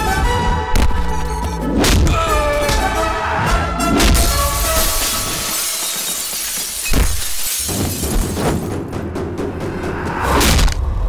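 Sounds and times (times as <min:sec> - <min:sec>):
glass shattering: 0:04.0 - 0:08.7.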